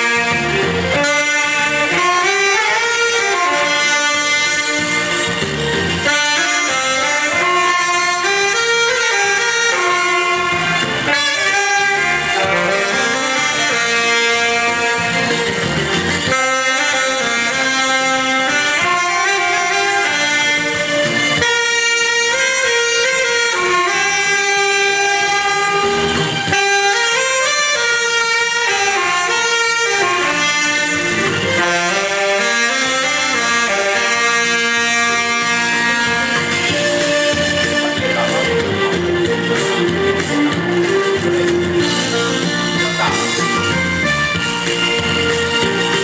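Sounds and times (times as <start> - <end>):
saxophones playing a melody: 0.0 - 46.0.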